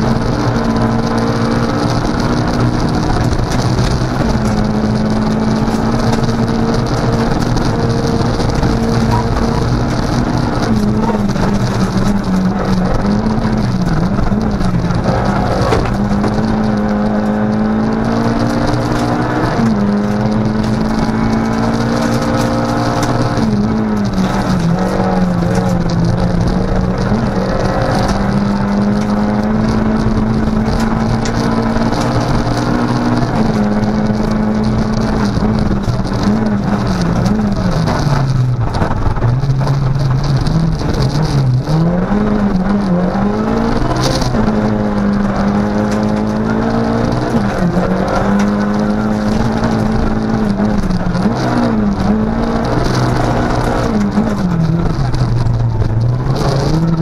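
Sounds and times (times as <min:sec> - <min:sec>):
rally car engine revving: 0:00.0 - 0:57.0
road and gravel noise: 0:00.0 - 0:57.0.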